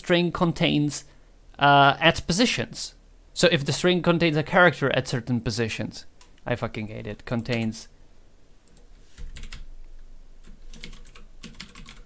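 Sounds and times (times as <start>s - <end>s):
keyboard typing: 8.6s - 9.7s, 10.4s - 12.0s.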